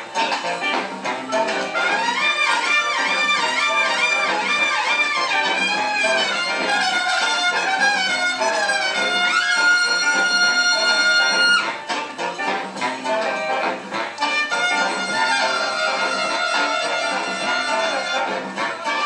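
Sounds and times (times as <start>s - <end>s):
big band latin jazz: 0.0s - 19.0s
horns holding a high note: 0.7s - 19.0s.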